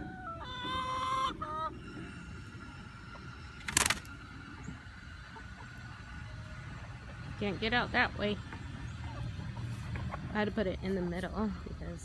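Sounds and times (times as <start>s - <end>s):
hen calling: 0.0s - 2.2s
wings flapping: 3.6s - 4.2s.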